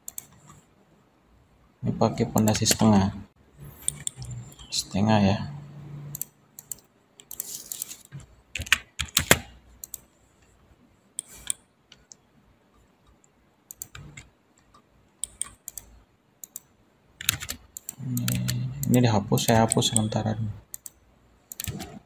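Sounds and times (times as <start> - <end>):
computer keyboard typing: 0.0 - 0.6, 2.3 - 3.0, 3.7 - 4.7, 6.1 - 10.1, 11.2 - 12.2, 13.7 - 22.0.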